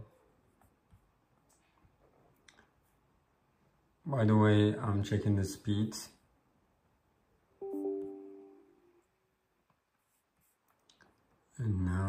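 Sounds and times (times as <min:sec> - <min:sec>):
soft notification chime: 0:07.6 - 0:09.0.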